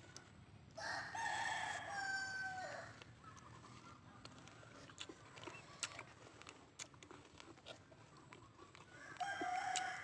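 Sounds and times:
rooster crowing: 0.8s - 3.0s, 9.0s - 10.0s.

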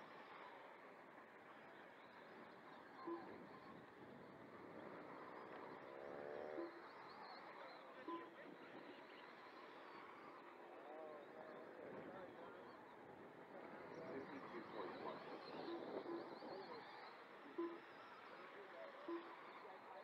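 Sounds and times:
faint indistinct voices: 0.0s - 20.0s
low outdoor hum: 0.0s - 20.0s.

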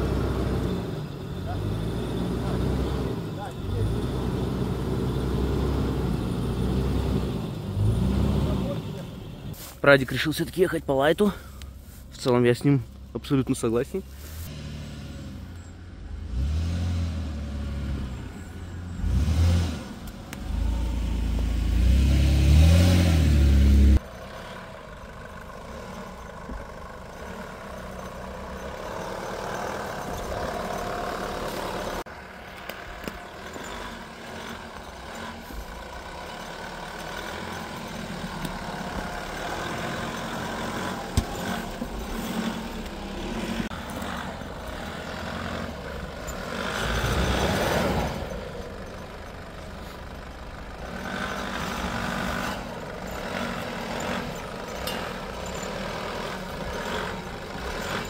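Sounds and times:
engine revving hard: 0.0s - 9.0s, 16.2s - 18.2s, 19.0s - 24.5s, 37.0s - 48.5s, 50.8s - 58.0s
distant engine working uphill: 14.0s - 58.0s.

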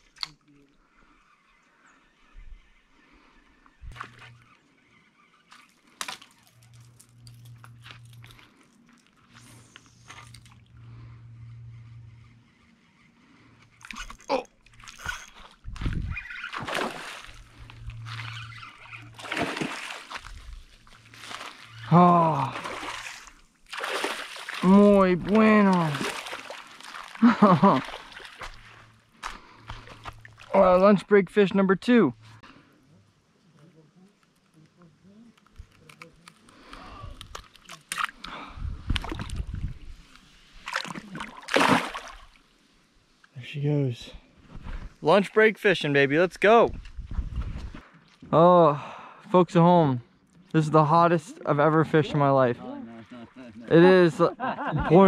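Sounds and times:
fish splashing in water: 16.4s - 21.7s, 22.4s - 28.8s, 40.6s - 42.4s.

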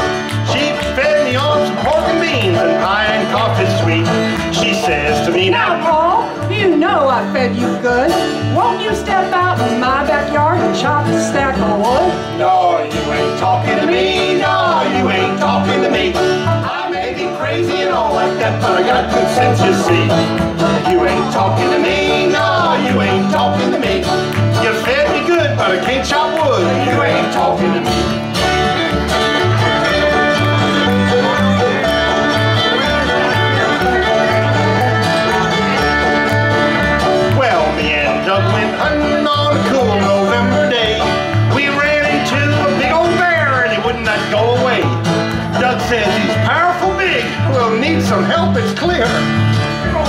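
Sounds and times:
acoustic guitar: 0.0s - 50.0s
banjo: 0.0s - 50.0s
plucked upright bass: 0.0s - 50.0s
bowed fiddle: 28.3s - 41.3s.

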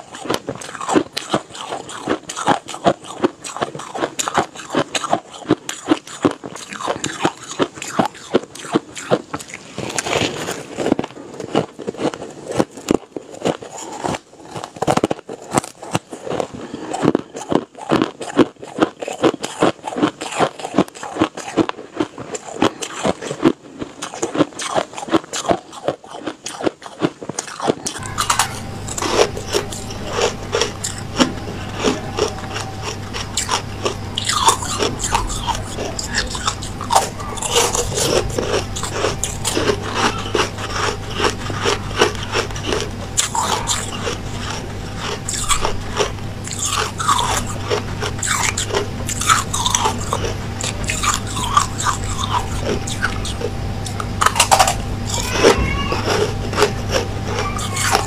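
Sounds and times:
steady low hum: 0.0s - 26.5s, 27.2s - 58.0s
crunching and chewing ice: 0.0s - 58.0s.

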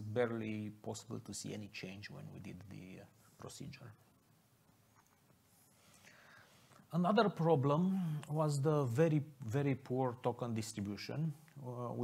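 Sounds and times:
man speaking: 0.0s - 4.1s, 6.9s - 12.0s
soft breath-like sound: 5.5s - 6.9s.

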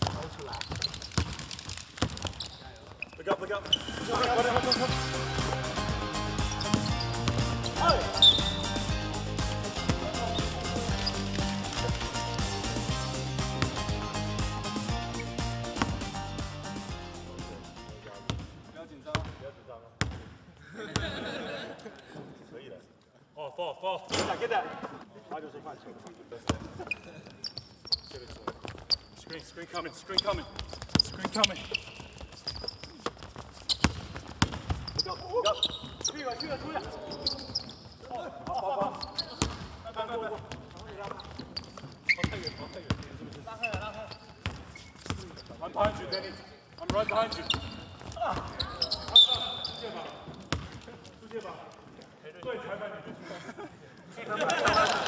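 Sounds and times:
basketball bouncing on wooden court: 0.0s - 3.0s, 6.4s - 8.9s, 19.1s - 19.4s, 20.0s - 20.4s, 30.2s - 36.1s, 36.8s - 39.8s, 40.4s - 46.1s, 46.7s - 51.2s.

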